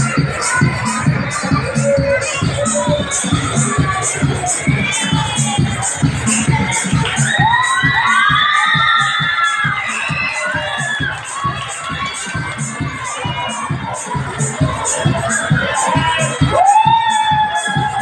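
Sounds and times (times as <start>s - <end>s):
children shouting and cheering: 0.0s - 18.0s
loud dance music: 0.0s - 18.0s.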